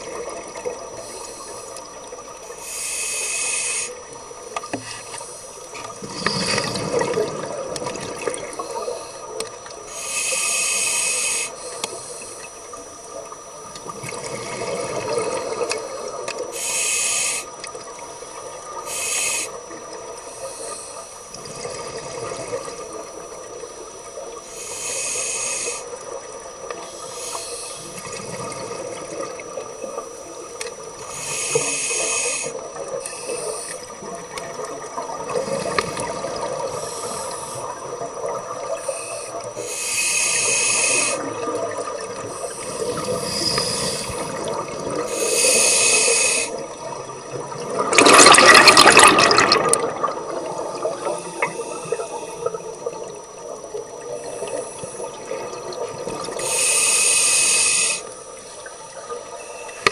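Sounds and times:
underwater hum: 0.0 - 59.9
diver exhaling bubbles: 6.0 - 9.0, 31.6 - 38.8, 40.5 - 53.2.

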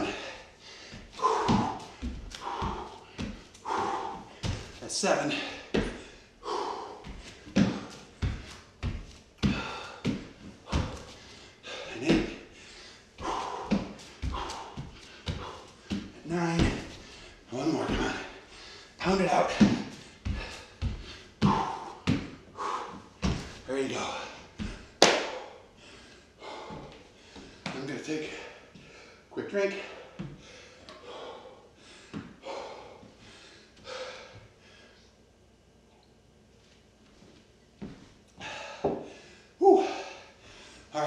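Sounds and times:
man breathing hard and grunting: 0.0 - 8.5, 9.4 - 35.0, 38.4 - 41.0
hands and feet thudding on wood floor: 0.9 - 12.5, 13.2 - 18.4, 19.1 - 22.4, 23.1 - 25.4.

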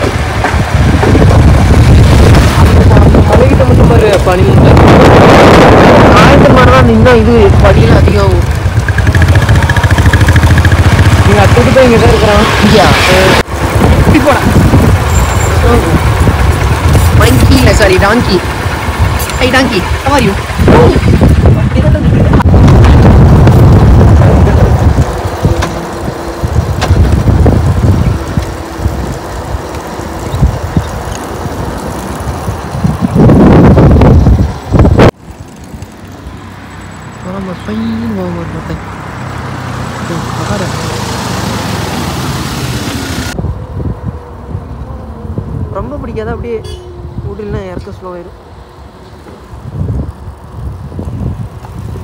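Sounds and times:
wind buffeting microphone: 0.0 - 36.4, 37.7 - 52.0.

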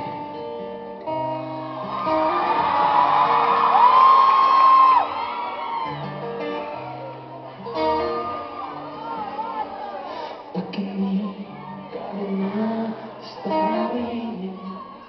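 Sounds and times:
acoustic guitar picking: 0.0 - 4.9, 5.6 - 14.7
audience screaming and cheering: 1.1 - 15.0
long high scream: 1.6 - 6.2.

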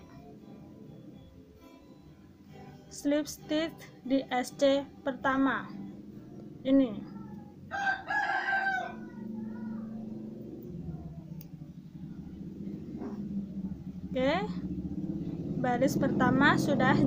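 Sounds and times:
low steady hum: 0.0 - 17.0
rooster crowing: 7.7 - 10.0.

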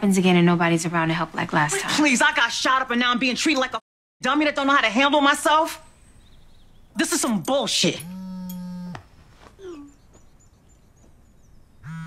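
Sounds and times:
person humming nasally: 9.6 - 10.0.

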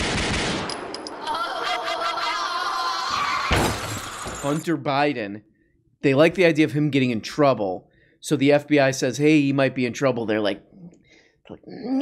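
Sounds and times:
rapid gunfire: 0.0 - 0.9.

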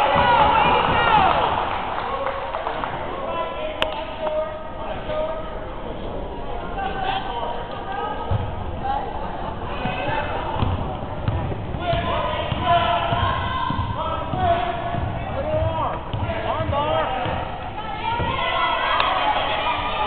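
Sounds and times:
basketball bouncing on hardwood: 10.6 - 17.5
spectators shouting: 17.8 - 20.0.

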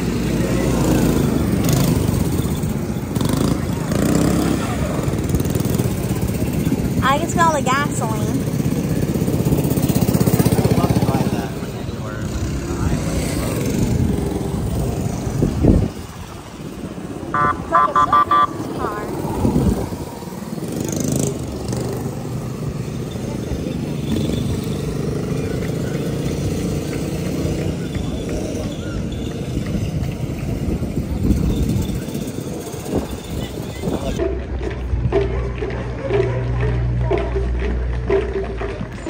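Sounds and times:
engine revving: 0.0 - 39.0
small gasoline engines running: 0.0 - 39.0
short beeps: 17.4 - 18.7.

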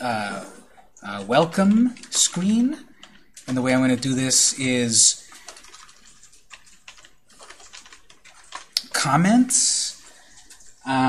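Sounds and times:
computer keyboard typing: 1.0 - 11.0.

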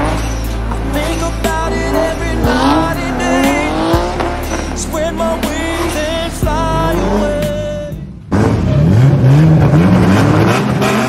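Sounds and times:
bass-heavy music with steady beat: 0.0 - 8.2
car engine revving: 0.0 - 11.0.

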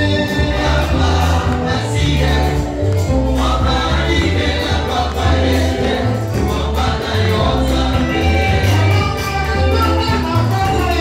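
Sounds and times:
gospel choir singing: 0.0 - 11.0
moving bass line: 0.0 - 11.0.

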